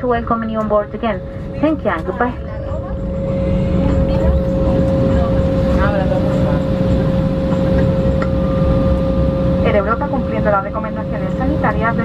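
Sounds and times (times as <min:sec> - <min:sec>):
constant engine whine: 0:00.0 - 0:12.0
jet engine low rumble: 0:00.0 - 0:12.0
higher tone: 0:01.2 - 0:12.0.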